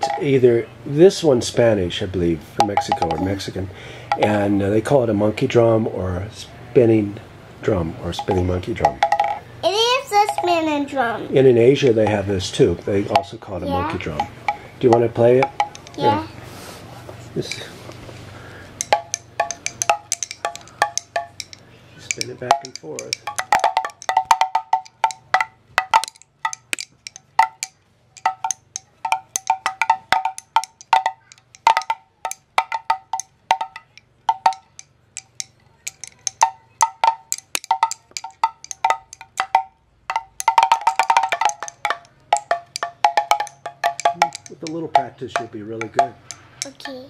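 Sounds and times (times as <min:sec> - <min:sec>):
pellet drum clicking: 0:00.0 - 0:00.4, 0:02.6 - 0:03.5, 0:04.1 - 0:04.6, 0:08.1 - 0:09.5, 0:11.8 - 0:12.3, 0:13.0 - 0:16.3, 0:18.5 - 0:47.0.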